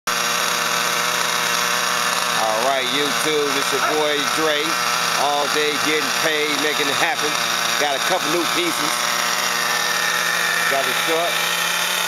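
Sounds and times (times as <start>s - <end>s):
model car engine idling: 0.1s - 12.0s.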